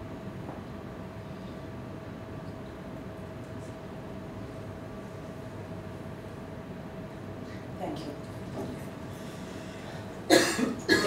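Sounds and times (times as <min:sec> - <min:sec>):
woman coughing: 0:10.3 - 0:11.0.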